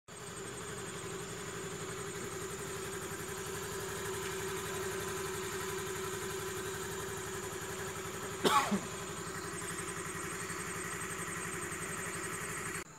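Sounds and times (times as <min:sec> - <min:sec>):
engine-like pulsing running sound: 0:00.1 - 0:12.9.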